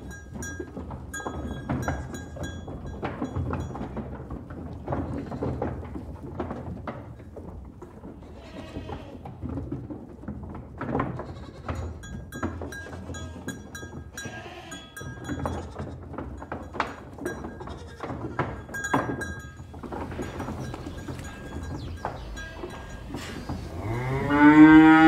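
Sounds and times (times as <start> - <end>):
knocks and clatter: 0.0 - 25.0
livestock bleating: 8.2 - 9.2, 11.2 - 11.9, 14.2 - 15.9, 17.6 - 18.4, 20.2 - 25.0.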